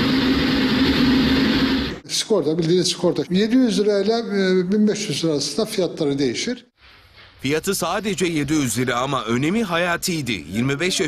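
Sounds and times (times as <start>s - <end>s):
machine humming and rushing: 0.0s - 2.0s.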